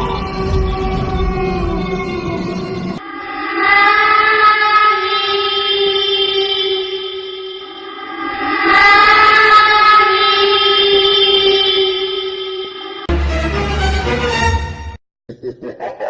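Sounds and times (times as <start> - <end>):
horror horn-like drone: 0.0 - 3.5.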